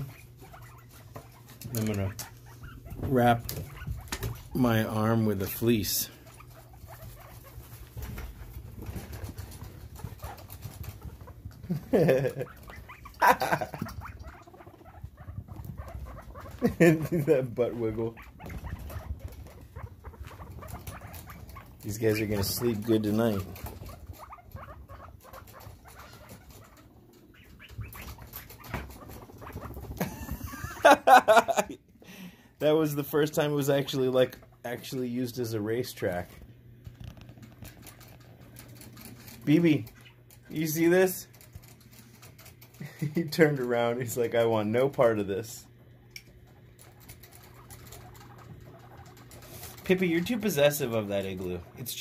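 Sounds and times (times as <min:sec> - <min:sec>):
guinea pig vocal calls: 0:00.0 - 0:30.5, 0:32.6 - 0:52.0
guinea pigs shuffling in hay: 0:00.0 - 0:30.5, 0:32.6 - 0:52.0.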